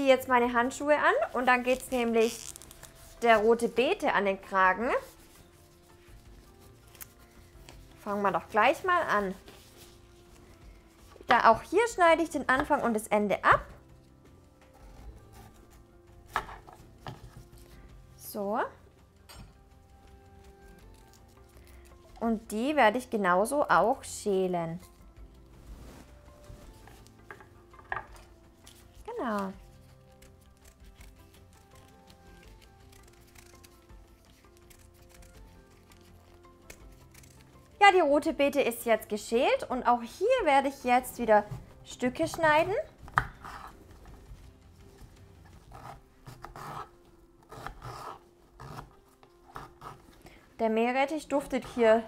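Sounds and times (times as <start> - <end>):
quiet background music: 0.0 - 52.0
peeler scraping beetroot skin: 1.3 - 10.1, 20.3 - 21.8, 28.7 - 37.8, 43.1 - 43.8, 45.5 - 50.2
knife cutting on wooden board: 43.1 - 43.8, 45.5 - 50.1.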